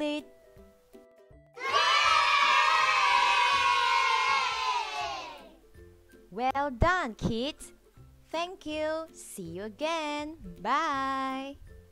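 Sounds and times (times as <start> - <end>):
children cheering: 1.6 - 5.6.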